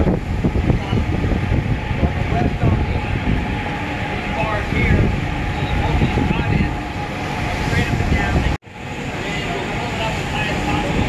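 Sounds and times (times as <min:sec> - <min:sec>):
ship deck low rumble: 0:00.0 - 0:11.0.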